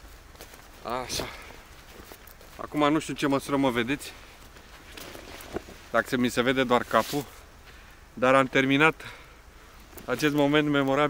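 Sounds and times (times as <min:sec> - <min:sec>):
faint outdoor background: 0:00.0 - 0:11.0
man speaking: 0:00.8 - 0:01.6, 0:02.6 - 0:04.3, 0:05.9 - 0:07.4, 0:08.2 - 0:09.2, 0:10.0 - 0:11.0.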